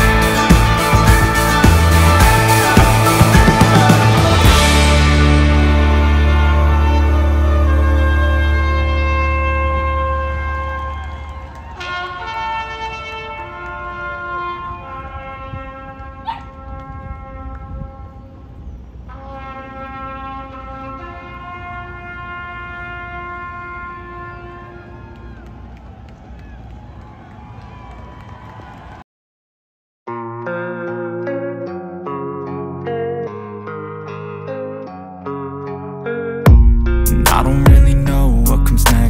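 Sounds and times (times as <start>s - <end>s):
horn-like wind instrument music: 0.0s - 25.7s.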